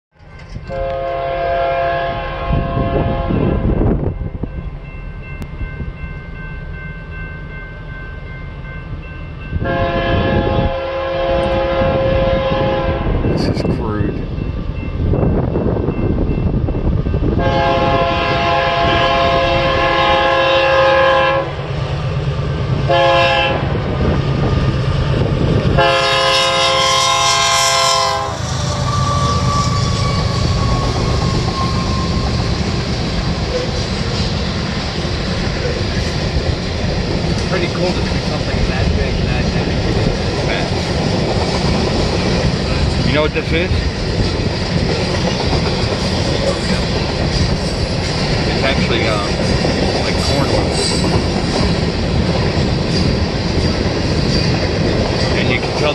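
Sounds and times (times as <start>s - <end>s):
rolling train: 0.1s - 55.9s
locomotive air horn blasts: 0.7s - 3.7s, 9.6s - 13.2s, 17.4s - 21.6s, 22.9s - 23.8s, 25.8s - 31.9s.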